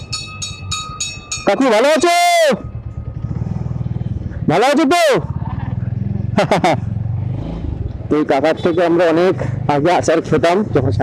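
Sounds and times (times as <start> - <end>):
motorcycle engine pulsing: 0.0 - 9.0.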